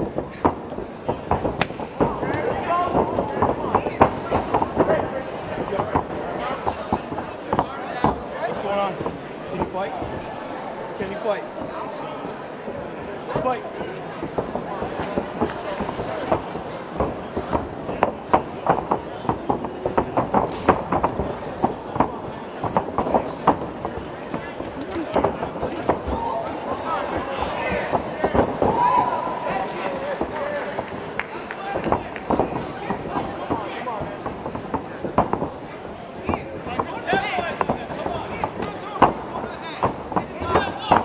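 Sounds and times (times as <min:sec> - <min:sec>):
spectators shouting: 0:26.0 - 0:30.7.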